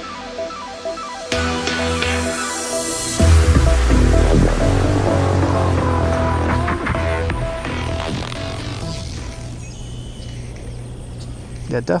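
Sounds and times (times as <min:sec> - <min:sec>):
electronic music with held notes: 0:00.0 - 0:11.8.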